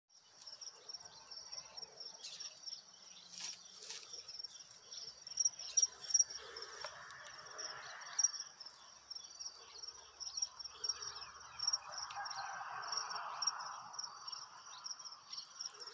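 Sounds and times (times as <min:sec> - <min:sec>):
crickets chirping: 0:00.3 - 0:15.9.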